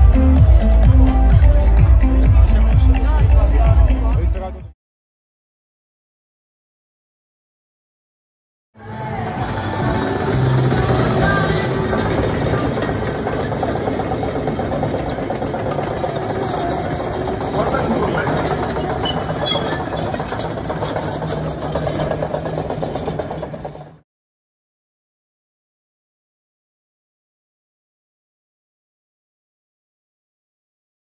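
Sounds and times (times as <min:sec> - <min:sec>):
music: 0:00.0 - 0:04.8, 0:08.8 - 0:13.1
voices: 0:08.8 - 0:20.6
excavator engine hum: 0:08.8 - 0:24.0
hydraulics whining: 0:08.8 - 0:24.0.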